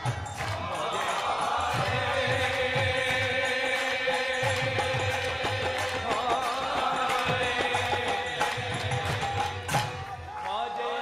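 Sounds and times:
devotional mantra chanting: 0.0s - 11.0s.

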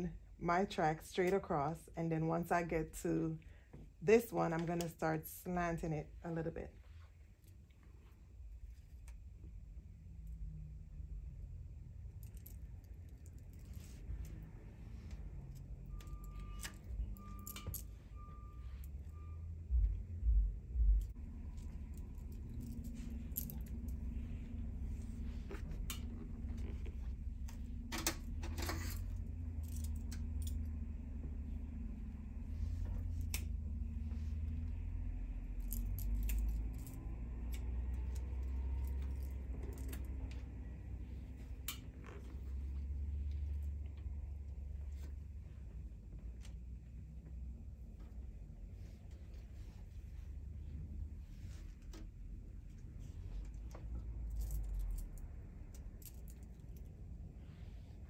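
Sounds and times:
metal bangles jangling and clicking: 12.1s - 14.4s, 15.2s - 18.0s, 21.0s - 24.2s, 27.9s - 30.8s, 35.4s - 40.2s, 54.2s - 56.9s.

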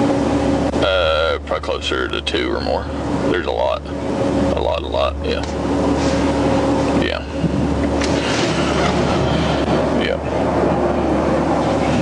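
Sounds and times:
car cabin rushing noise: 7.4s - 9.9s.

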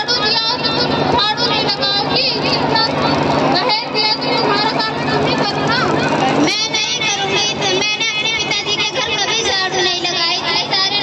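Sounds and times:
girl speaking over loudspeakers: 0.0s - 11.0s
steady low hum: 0.0s - 11.0s.

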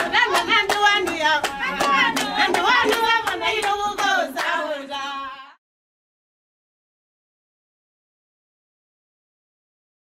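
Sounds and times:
hands clapping in rhythm: 0.0s - 5.2s
women singing together: 0.0s - 5.6s.

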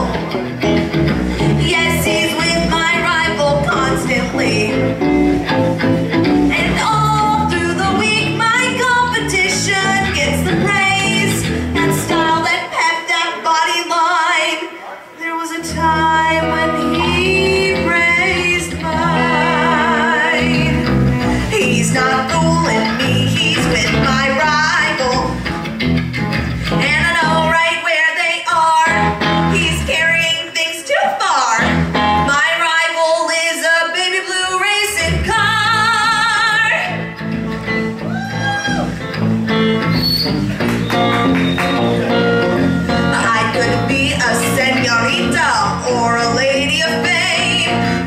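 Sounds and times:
electric bass: 0.0s - 12.5s, 15.6s - 27.7s, 28.6s - 30.3s, 31.6s - 32.4s, 35.0s - 48.0s
electric guitar: 0.0s - 13.4s, 14.6s - 30.7s, 31.5s - 48.0s
woman singing: 1.4s - 5.0s, 6.4s - 25.4s, 26.7s - 37.0s, 42.9s - 48.0s.

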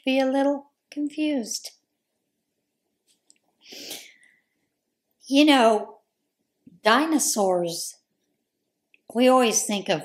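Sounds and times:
woman's breathy puff of air: 3.6s - 4.2s.

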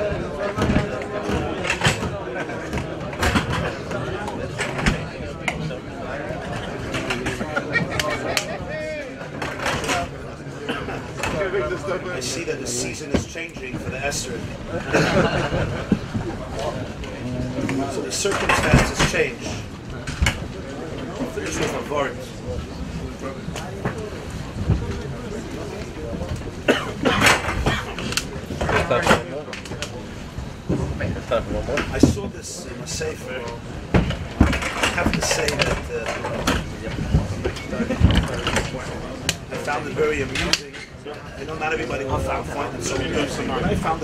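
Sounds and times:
murmur of voices: 0.0s - 44.0s.

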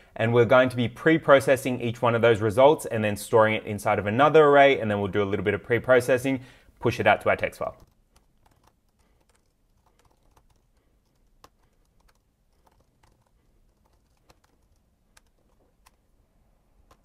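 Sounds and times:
typing on keyboard: 7.6s - 16.0s, 16.8s - 17.0s.

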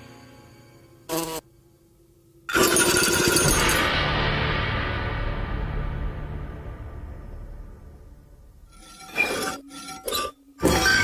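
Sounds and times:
film music: 3.4s - 9.7s.

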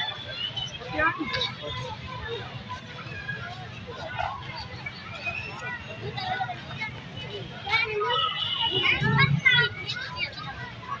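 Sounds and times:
children talking and calling: 0.0s - 11.0s.

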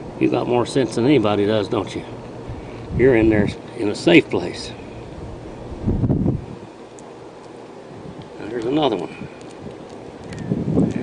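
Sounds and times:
wind buffeting microphone: 2.4s - 3.6s, 5.1s - 6.7s, 7.9s - 11.0s.

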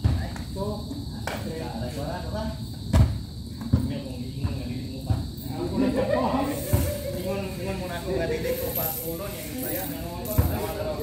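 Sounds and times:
men talking and calling out: 0.0s - 11.0s
dull thump: 2.9s - 5.3s.

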